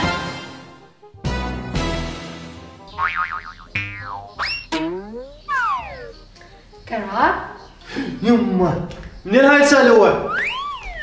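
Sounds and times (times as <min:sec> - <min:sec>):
cartoon wobbling pitch sound: 0:02.9 - 0:06.2, 0:10.2 - 0:11.0
falling slide whistle glide: 0:10.2 - 0:11.0.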